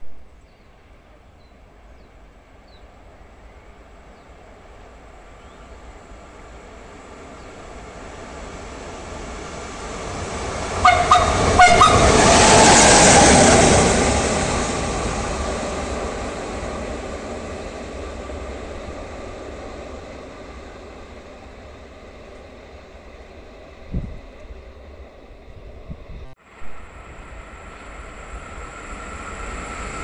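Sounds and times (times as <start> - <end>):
train rumbling past: 0.0 - 30.0
train horn blasts: 10.8 - 12.6.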